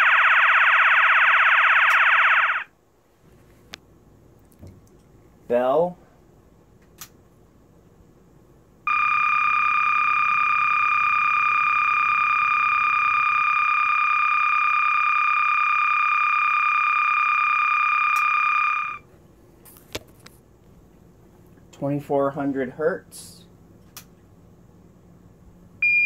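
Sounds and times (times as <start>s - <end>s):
fire alarm horn: 0.0s - 2.7s, 8.9s - 19.0s.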